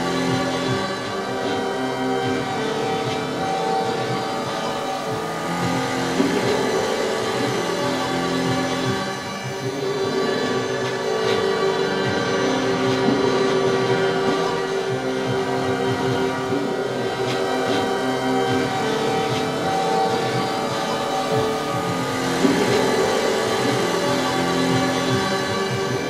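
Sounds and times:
electronic drone: 0:00.0 - 0:26.0.

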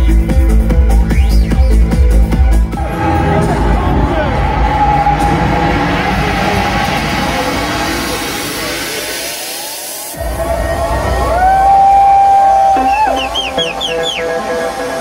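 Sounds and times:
electronic dance music: 0:00.0 - 0:15.0
rising synth sweeps: 0:02.8 - 0:12.0.

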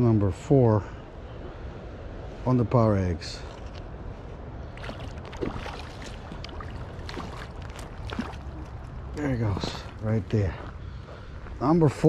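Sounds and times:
steady low rumble: 0:00.0 - 0:12.0
fish splashing at surface: 0:04.7 - 0:09.0.

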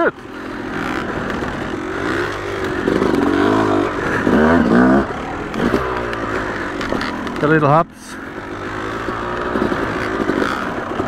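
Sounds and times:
two-stroke motorcycle engine revving: 0:00.0 - 0:11.0.

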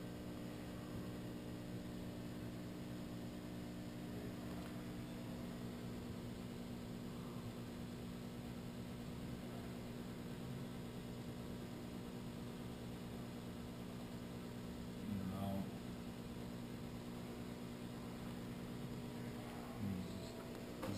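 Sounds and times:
electrical hum of milling machine: 0:00.0 - 0:20.9.

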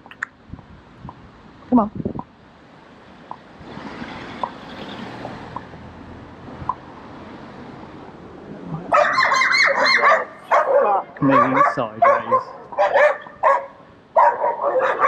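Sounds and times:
quiet street background: 0:00.0 - 0:15.0
dog barking rapidly: 0:08.9 - 0:15.0.

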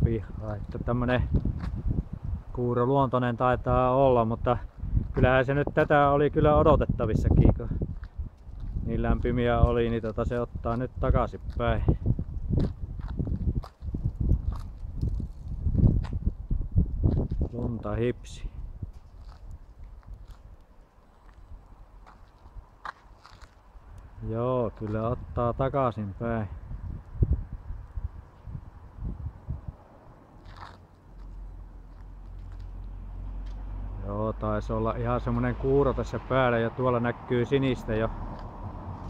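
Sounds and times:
steady low rumble: 0:00.0 - 0:39.0
footsteps on pavement: 0:00.5 - 0:02.2, 0:04.4 - 0:06.7, 0:07.3 - 0:18.0, 0:18.8 - 0:25.8, 0:30.2 - 0:34.0, 0:37.8 - 0:39.0
low rumbling noise: 0:26.5 - 0:39.0.

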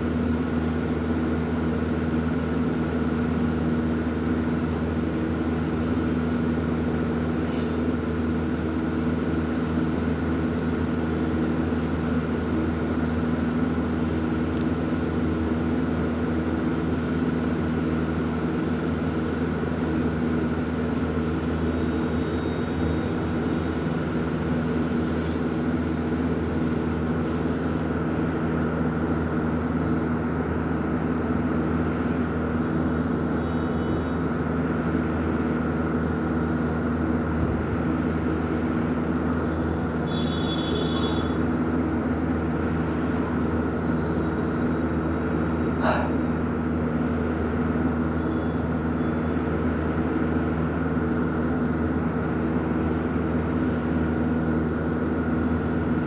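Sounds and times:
loud droning hum: 0:00.0 - 0:56.0.

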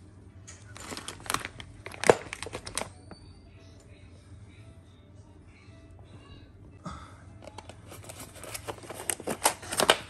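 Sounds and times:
plastic bag crinkling: 0:00.7 - 0:03.0.

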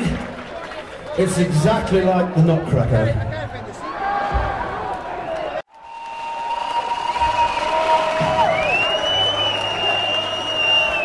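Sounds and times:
crowd cheering: 0:00.0 - 0:02.0, 0:03.5 - 0:11.0
long held whistles: 0:05.8 - 0:11.0.

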